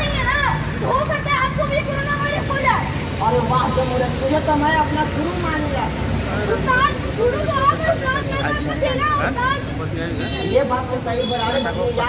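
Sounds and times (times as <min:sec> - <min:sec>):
street background rumble: 0:00.0 - 0:12.0.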